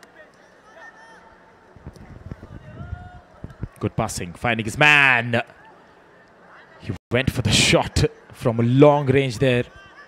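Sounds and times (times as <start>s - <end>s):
murmur of distant crowd: 0.0s - 10.0s.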